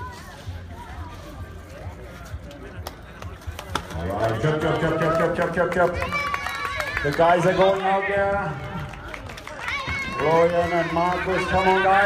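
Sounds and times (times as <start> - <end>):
running footsteps on asphalt: 0.0 - 12.0.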